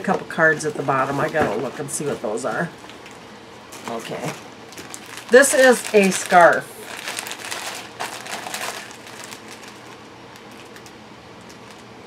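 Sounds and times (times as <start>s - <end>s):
plastic packaging crinkling: 3.8s - 12.0s.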